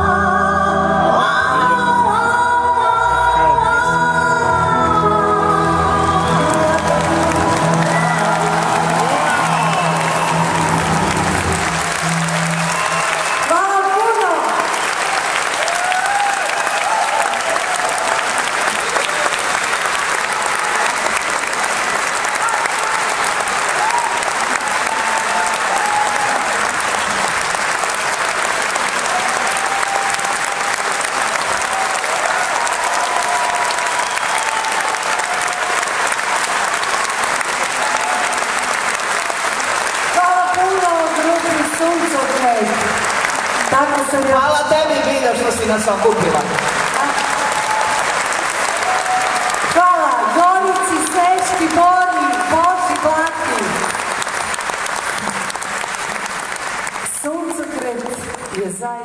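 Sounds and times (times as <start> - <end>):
crowd calling and cheering: 0.0 - 59.0
audience applauding: 5.8 - 59.0
sustained music note: 7.8 - 13.4.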